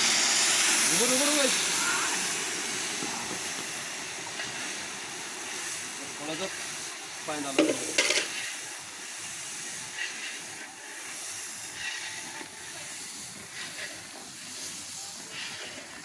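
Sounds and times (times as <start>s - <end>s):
hissing and sizzling in a pan: 0.0s - 16.0s.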